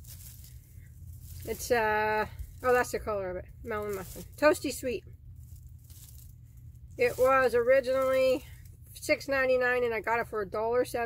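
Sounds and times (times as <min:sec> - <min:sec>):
yarn rustling in hands: 0:00.0 - 0:08.8
low steady hum: 0:00.0 - 0:11.0.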